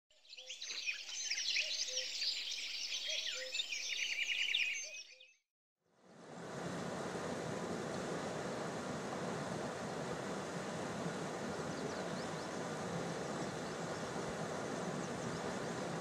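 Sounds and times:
birds chirping and whistling: 0.3 - 5.4, 11.6 - 12.6
steady rushing noise: 6.0 - 16.0.

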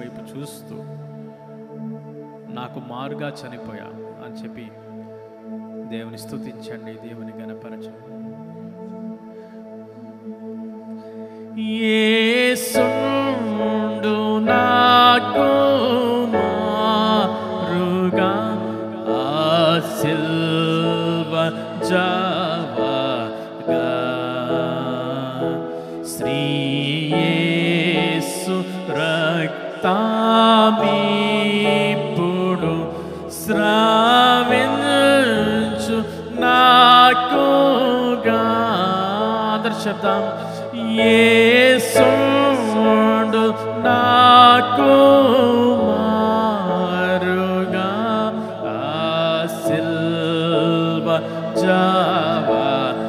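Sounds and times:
man singing devotional song: 0.0 - 1.5, 2.4 - 4.9, 5.8 - 9.3, 11.0 - 53.0
steady low tone: 0.0 - 53.0
sustained chords: 0.0 - 53.0.

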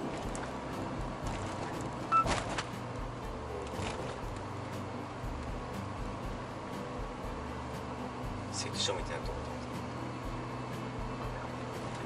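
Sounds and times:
van engine and road noise: 0.0 - 12.0.

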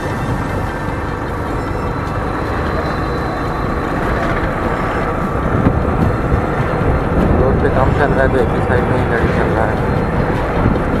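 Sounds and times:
road noise: 0.0 - 11.0
vehicle motor running: 0.0 - 11.0
wind noise: 0.0 - 11.0.

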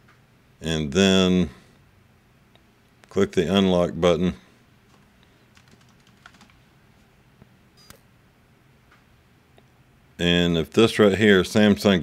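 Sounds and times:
typing on computer keyboard: 4.9 - 6.6.

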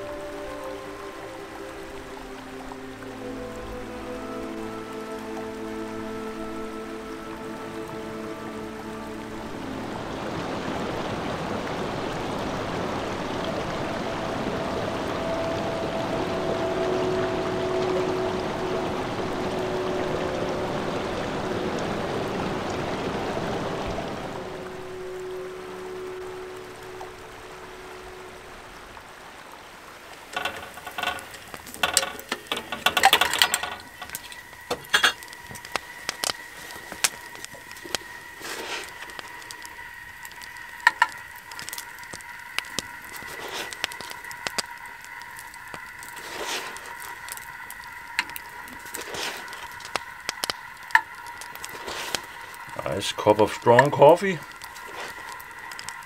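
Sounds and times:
faint steady high tone: 0.0 - 10.8, 13.1 - 56.0
rushing stream water: 0.0 - 56.0
wood fire crackling and popping: 28.4 - 56.0.

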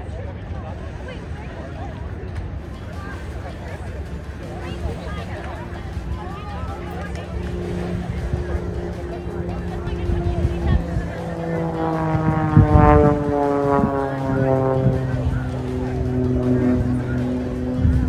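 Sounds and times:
propeller plane flying past: 0.0 - 18.0
spectators chattering: 0.0 - 18.0.

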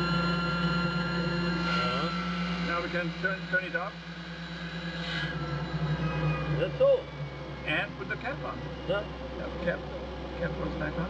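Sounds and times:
cabin fans humming: 0.0 - 11.0.

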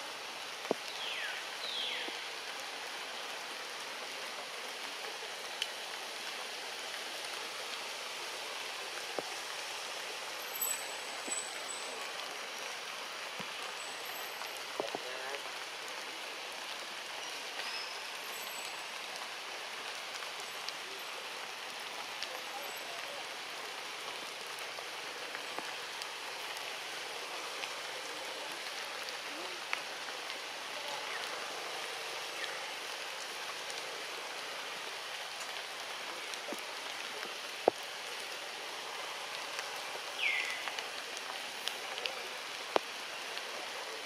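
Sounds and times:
forest ambience hiss: 0.0 - 44.0.

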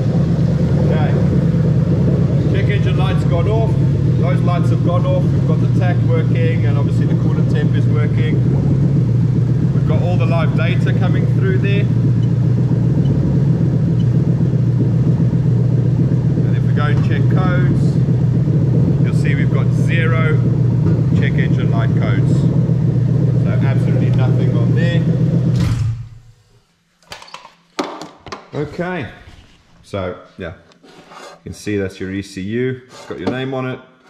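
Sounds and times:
car engine idling: 0.0 - 26.7.

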